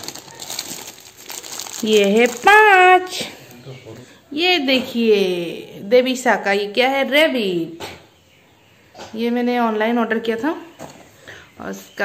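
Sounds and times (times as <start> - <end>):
plastic wrapping crinkling: 0.0 - 3.8.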